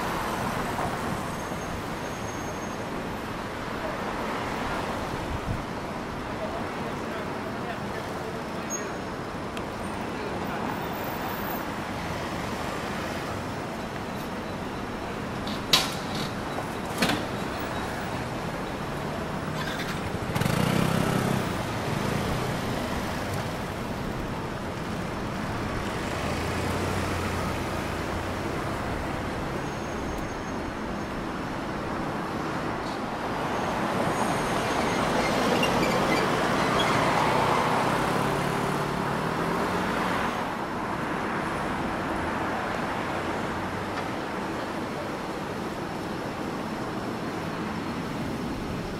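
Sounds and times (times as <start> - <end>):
car engines passing: 16.3 - 30.2, 31.2 - 48.9
motorbike engines passing: 18.9 - 29.2.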